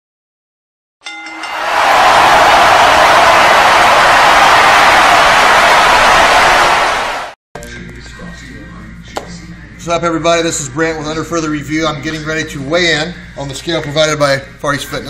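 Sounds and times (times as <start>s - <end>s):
stadium crowd roar: 1.2s - 7.4s.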